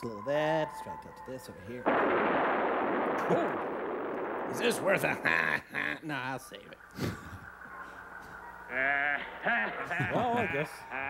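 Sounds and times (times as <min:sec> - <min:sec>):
person laughing: 0:03.2 - 0:03.7, 0:04.9 - 0:06.2, 0:06.9 - 0:07.4, 0:09.2 - 0:11.0.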